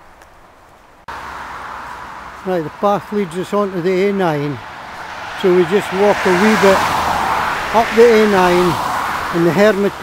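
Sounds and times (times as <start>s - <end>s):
traffic hiss on wet road: 0.2s - 10.0s.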